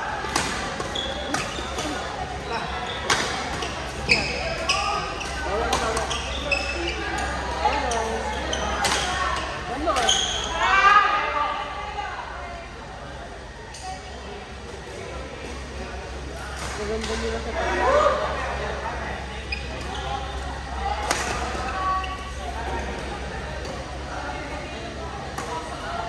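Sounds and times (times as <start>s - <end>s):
voices of players: 0.0s - 26.0s.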